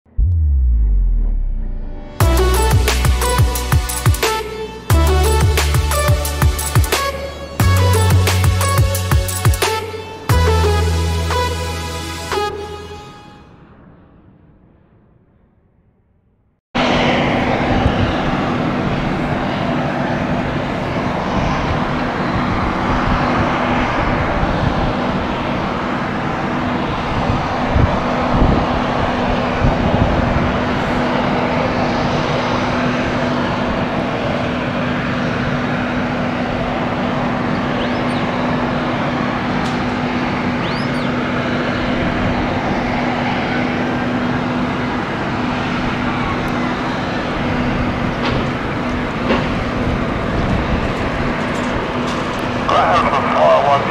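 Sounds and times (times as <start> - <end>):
low hum: 0.0 - 9.2
jet engines rushing: 0.1 - 15.1, 16.8 - 53.9.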